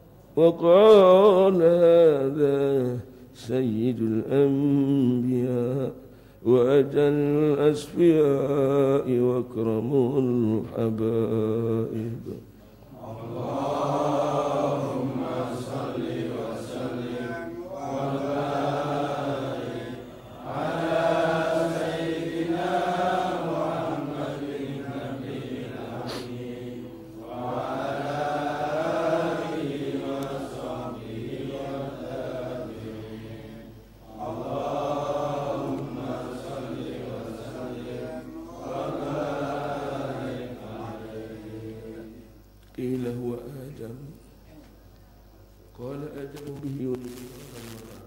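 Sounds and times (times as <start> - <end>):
man chanting: 0.4 - 12.4, 42.7 - 44.2, 45.7 - 48.0.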